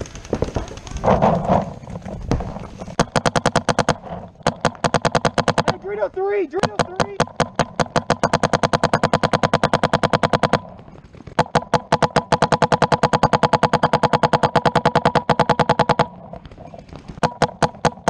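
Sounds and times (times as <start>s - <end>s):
paintball marker firing: 2.3s - 18.0s.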